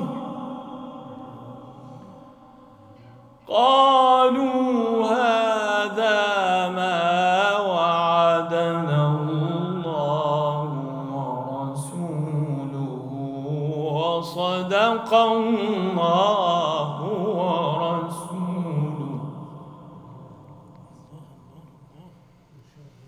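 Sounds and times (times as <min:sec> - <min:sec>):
man reciting melodically: 0:00.0 - 0:02.4, 0:03.4 - 0:23.0.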